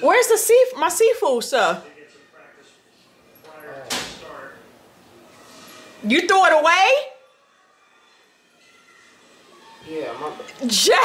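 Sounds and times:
woman speaking: 0:00.0 - 0:01.8.

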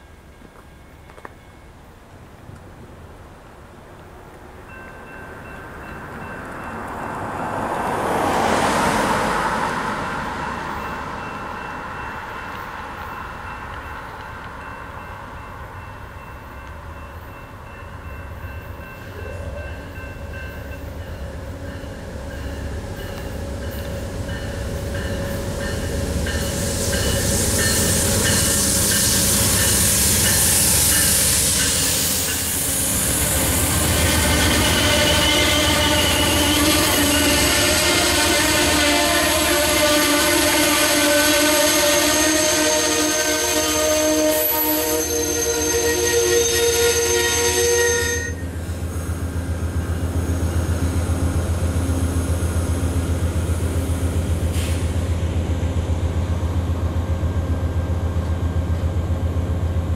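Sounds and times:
diesel locomotive rumble: 0:05.4 - 0:59.9
train cars rolling past hissing: 0:17.2 - 0:59.9
braking wheels squealing: 0:25.4 - 0:38.0, 0:41.8 - 0:48.5.

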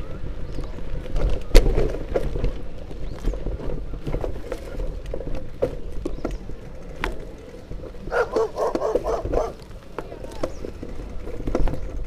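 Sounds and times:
dog barking: 0:08.1 - 0:09.6.

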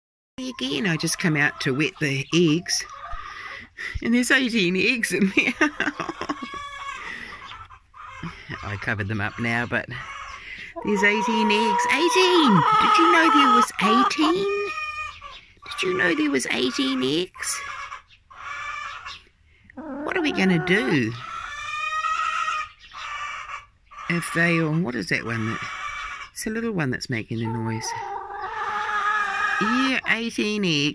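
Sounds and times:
chicken calling: 0:00.4 - 0:04.0, 0:05.2 - 0:26.4, 0:27.4 - 0:30.9
hens clucking: 0:00.4 - 0:30.9.

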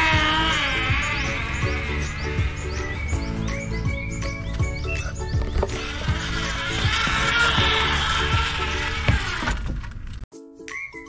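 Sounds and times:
zip-line trolley whirring on cable: 0:00.0 - 0:03.8, 0:05.7 - 0:10.0
background music with steady beat: 0:00.0 - 0:09.3.

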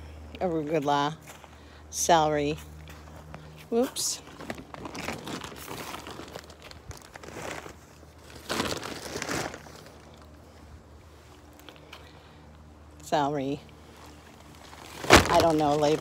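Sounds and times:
plastic mesh rustling: 0:04.3 - 0:10.2, 0:14.4 - 0:16.0.

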